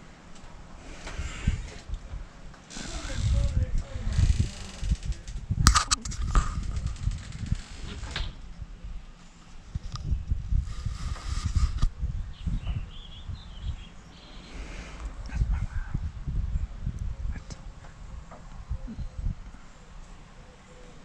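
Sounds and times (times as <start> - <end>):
wind rumble: 0.0 - 20.0
microphone handling noise: 0.8 - 19.6
bird chirping: 12.3 - 15.0.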